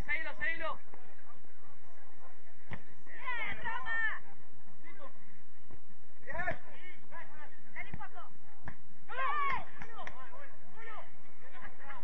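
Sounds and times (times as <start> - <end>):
footballers shouting: 6.2 - 12.0.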